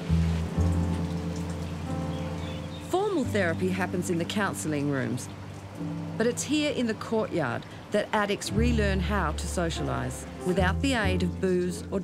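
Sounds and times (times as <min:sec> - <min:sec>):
rain falling into puddle: 0:00.0 - 0:06.8
low sustained music notes: 0:00.0 - 0:12.0.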